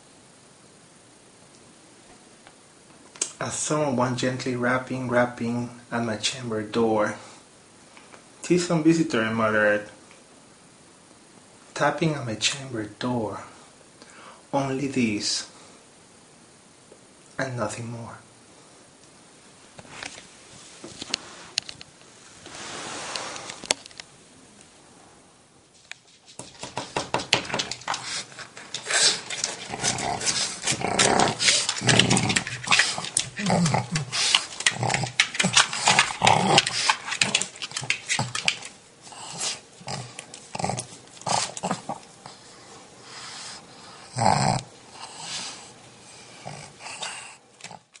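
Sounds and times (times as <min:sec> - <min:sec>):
dog breathing and snuffling: 0:27.4 - 0:47.9.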